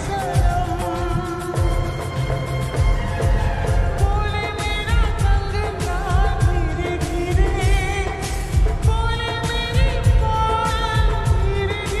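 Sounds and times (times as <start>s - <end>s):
person singing with reverb: 0.0s - 12.0s
steady beat: 0.0s - 12.0s.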